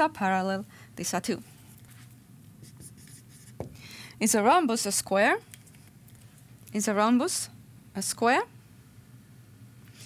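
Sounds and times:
marker writing on whiteboard: 0:02.6 - 0:03.7.

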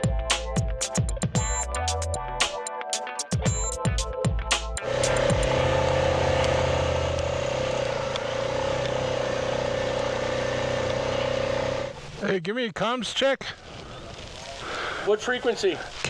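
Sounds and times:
electronic music: 0:00.0 - 0:06.6
atv engine running: 0:04.8 - 0:12.2
wind and road rushing noise: 0:04.8 - 0:12.2.

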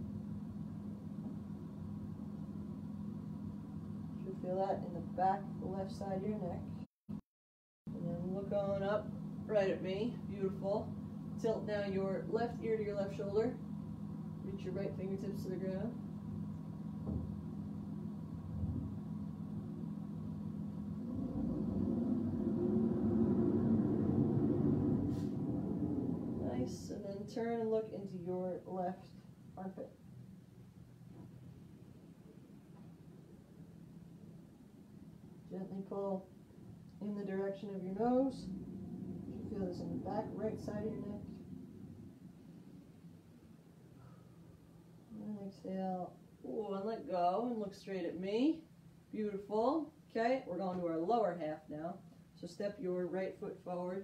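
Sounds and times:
steady low hum: 0:00.0 - 0:07.2, 0:07.9 - 0:54.0.

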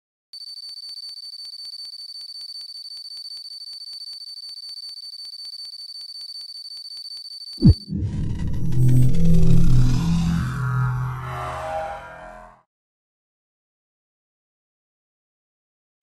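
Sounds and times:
steady high-pitched tone: 0:07.6 - 0:12.6.

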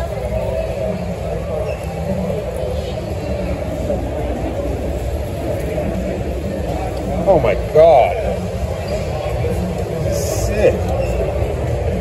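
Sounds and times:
crowd chatter: 0:00.0 - 0:12.0
steady low rumble: 0:11.5 - 0:12.0.

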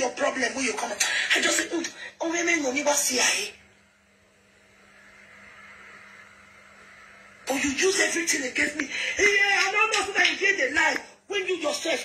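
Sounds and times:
faint hum: 0:00.0 - 0:12.0
steady low hiss: 0:00.0 - 0:12.0.

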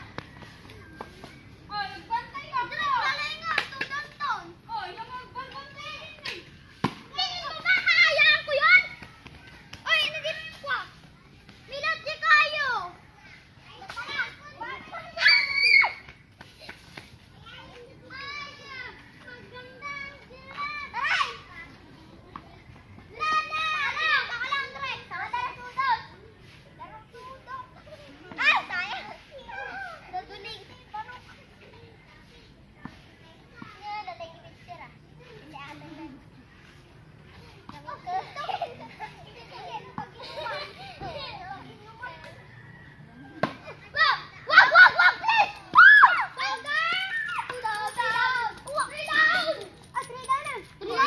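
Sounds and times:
children shouting at play: 0:00.0 - 0:51.0.

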